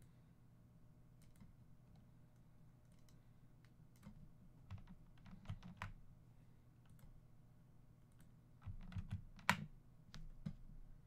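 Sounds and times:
computer keyboard keystrokes: 1.2 - 1.5, 3.9 - 6.0, 8.2 - 10.6.

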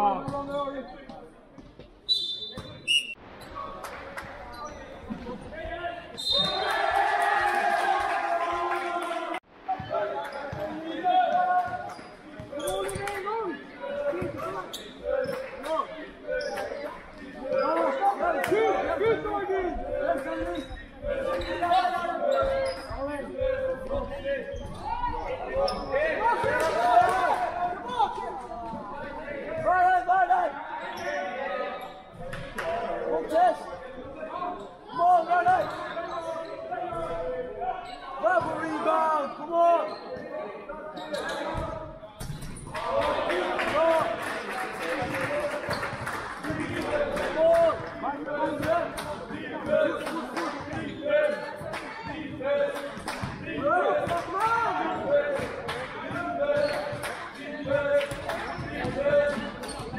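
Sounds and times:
people shouting in a hall: 5.7 - 31.8, 42.7 - 59.9.

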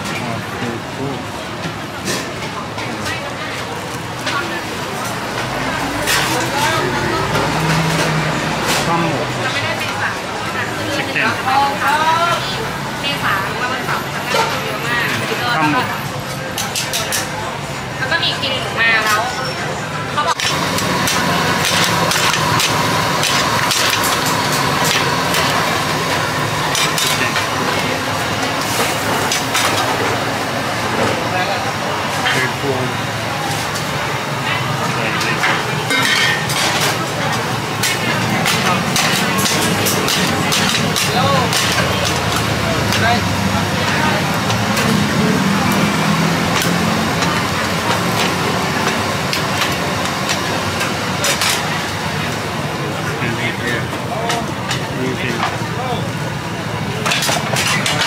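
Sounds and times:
crowd chatter: 0.0 - 58.0
passing traffic: 3.4 - 16.6, 19.6 - 58.0
ladles clinking against pans: 35.9 - 37.0.

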